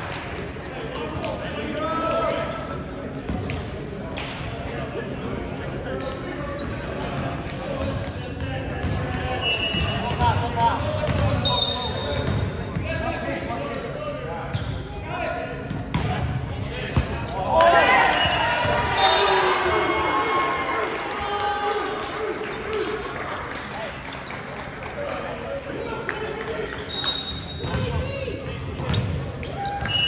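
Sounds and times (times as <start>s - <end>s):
players shouting and cheering: 16.8s - 24.0s, 24.9s - 30.0s.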